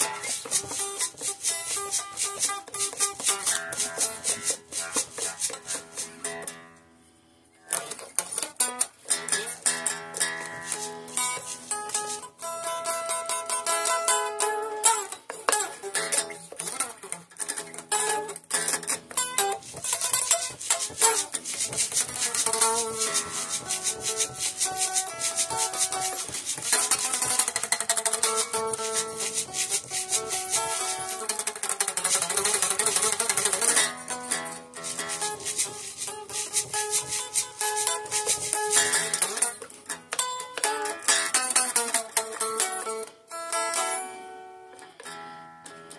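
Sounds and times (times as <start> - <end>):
unamplified electric guitar blues: 0.0 - 45.9.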